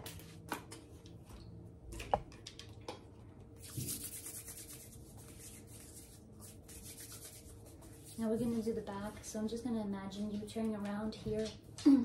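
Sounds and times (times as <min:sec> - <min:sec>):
palms rubbing together: 0:03.6 - 0:08.6.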